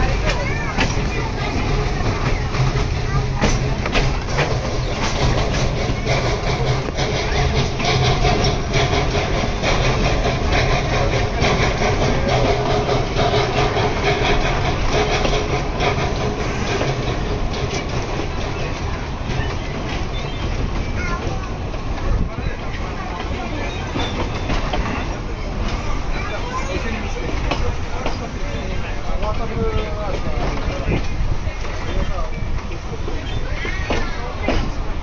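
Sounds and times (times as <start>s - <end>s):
train carriage rumbling on track: 0.0s - 35.0s
wheels clicking over rails: 0.0s - 35.0s.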